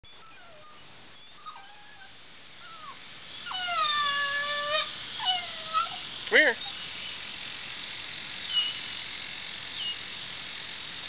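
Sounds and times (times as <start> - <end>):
puppy whining: 0.0 - 7.1, 8.4 - 8.8.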